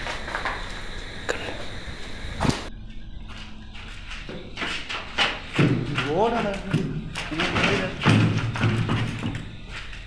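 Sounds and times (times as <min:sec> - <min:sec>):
loud thuds: 0:04.2 - 0:09.7.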